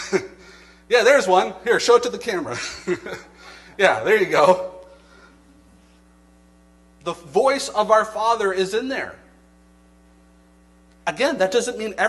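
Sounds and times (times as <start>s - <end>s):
electrical mains hum: 0.0s - 12.0s
man speaking: 0.9s - 3.2s, 3.8s - 4.9s, 7.0s - 9.3s, 11.1s - 12.0s.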